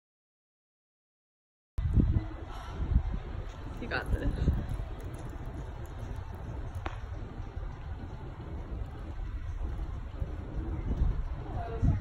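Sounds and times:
handling rumble and thumps: 3.5s - 12.0s.

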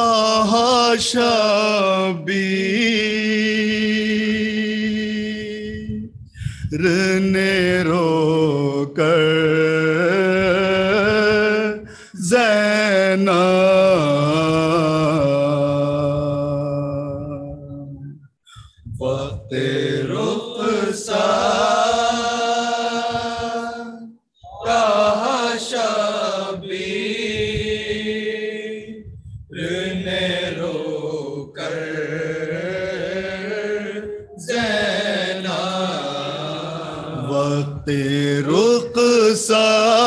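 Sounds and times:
men chanting into a microphone: 0.0s - 18.1s, 18.8s - 40.0s.

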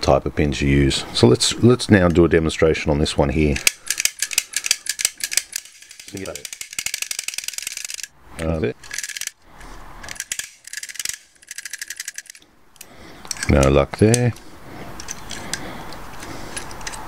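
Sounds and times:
lock pick clicking: 3.6s - 8.1s, 10.0s - 14.4s, 15.0s - 17.0s.

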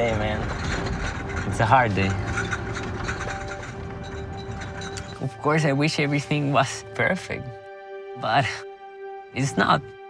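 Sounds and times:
car cabin road and engine noise: 0.0s - 7.3s
soft background music: 0.0s - 10.0s.

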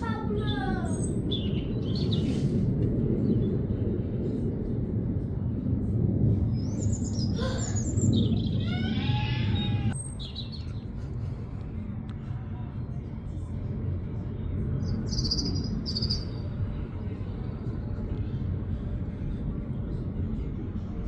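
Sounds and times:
steady low rumble: 0.0s - 21.0s
small songbirds chirping: 0.9s - 2.4s, 9.6s - 11.0s, 14.8s - 16.6s.

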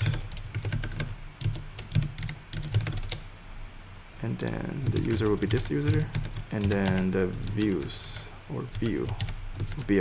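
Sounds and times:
computer keyboard typing: 0.0s - 3.3s, 4.4s - 10.0s.

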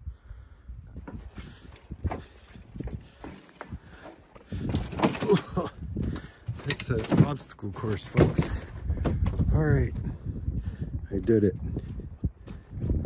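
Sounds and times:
knocks and thumps: 1.0s - 9.5s.

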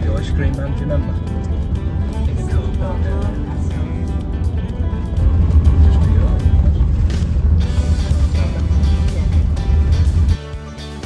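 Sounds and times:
background music: 0.0s - 11.0s
engine and road rumble: 0.0s - 11.0s.

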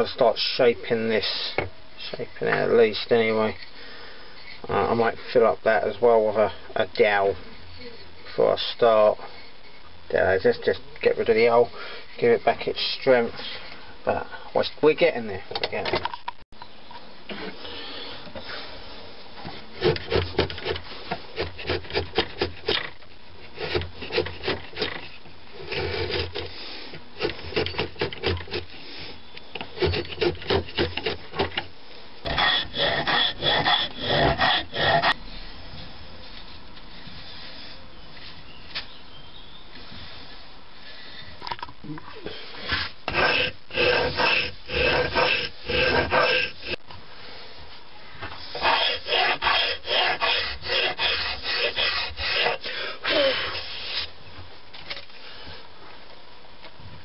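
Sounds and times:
file rasping on wood: 19.8s - 22.8s, 23.6s - 26.5s, 27.2s - 28.7s, 29.6s - 31.6s, 32.2s - 35.2s, 42.7s - 46.8s, 48.5s - 53.6s.

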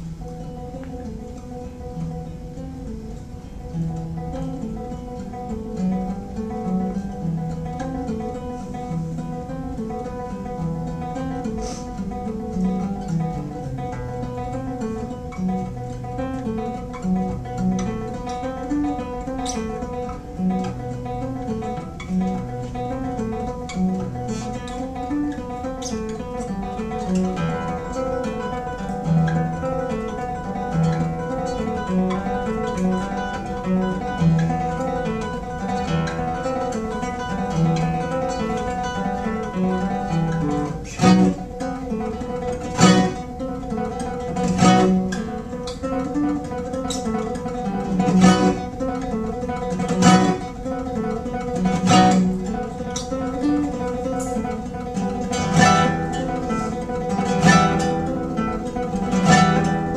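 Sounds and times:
fingerpicked classical guitar: 0.0s - 59.9s
strummed guitar chord: 0.0s - 59.9s.

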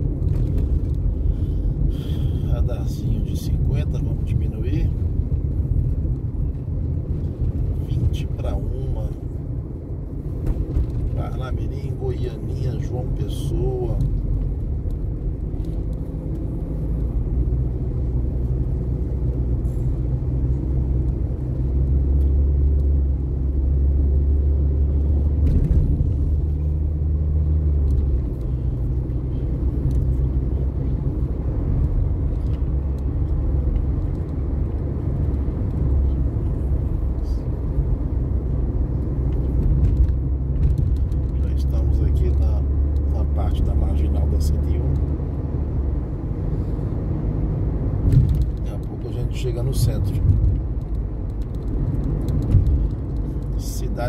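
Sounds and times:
car engine and road noise: 0.0s - 54.0s.

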